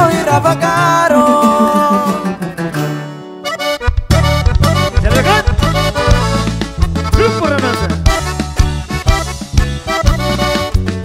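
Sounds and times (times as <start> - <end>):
band with accordion and guitars: 0.0 - 11.0.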